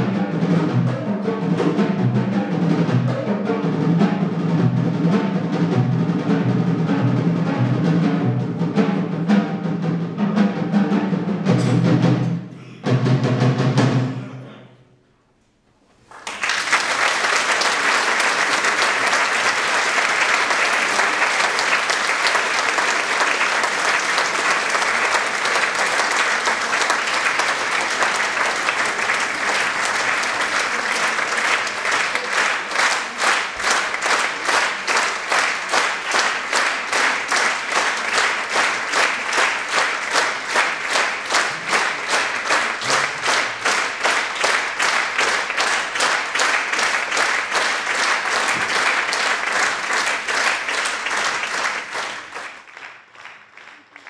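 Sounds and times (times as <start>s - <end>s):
audience applauding: 16.0s - 54.0s.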